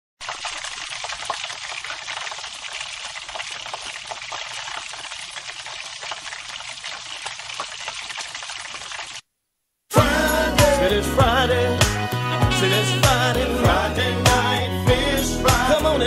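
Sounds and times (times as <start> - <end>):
food frying in hot oil: 0.2 - 9.2.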